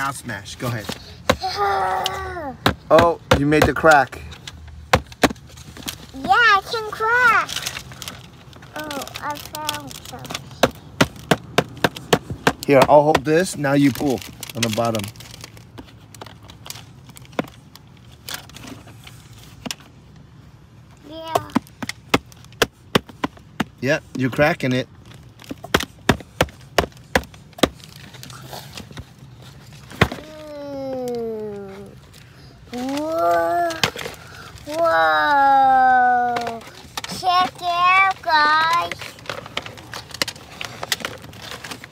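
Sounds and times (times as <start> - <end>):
child exclaiming: 1.4 - 2.6, 6.2 - 7.5, 8.7 - 10.6, 30.2 - 32.0, 32.7 - 34.0, 34.6 - 39.0.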